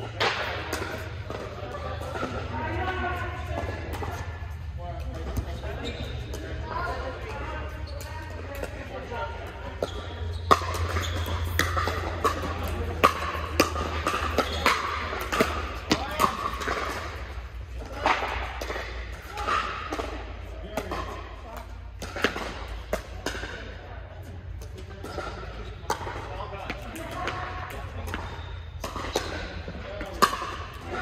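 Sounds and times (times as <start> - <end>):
paddles hitting plastic ball: 8.0 - 23.6.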